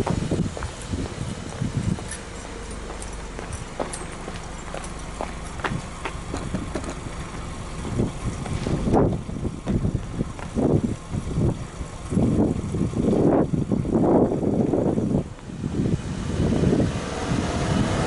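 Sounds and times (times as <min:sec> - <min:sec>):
irregular low thumps: 0:00.0 - 0:16.9
car engine idling: 0:00.0 - 0:18.0.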